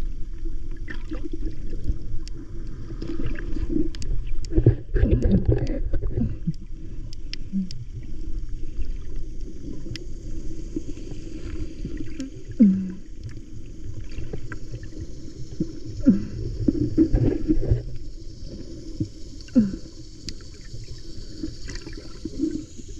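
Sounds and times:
faint ticks underwater: 0.0s - 22.9s
water moving around camera: 0.0s - 22.9s.

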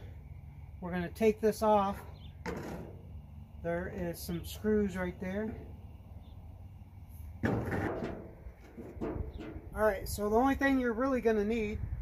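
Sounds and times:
knock with rattle: 7.4s - 9.6s.

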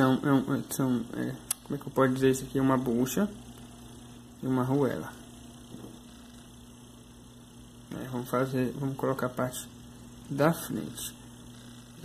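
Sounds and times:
low hum with faint hiss: 0.0s - 12.0s.

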